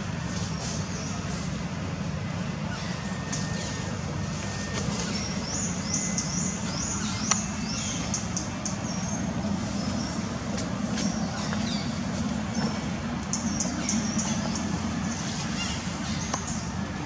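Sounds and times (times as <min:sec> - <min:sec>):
distant traffic rumble: 0:00.0 - 0:17.0.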